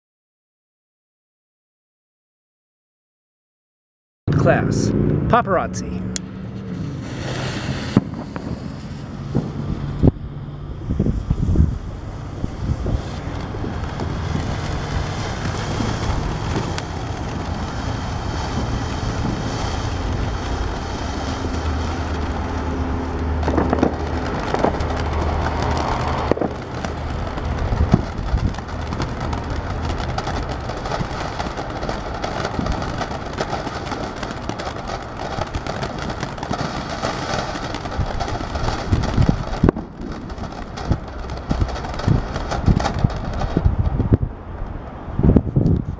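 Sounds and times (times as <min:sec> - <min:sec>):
sharp pops: 0:06.2 - 0:10.2, 0:12.7 - 0:43.7
firework fountain spraying sparks: 0:06.6 - 0:44.1.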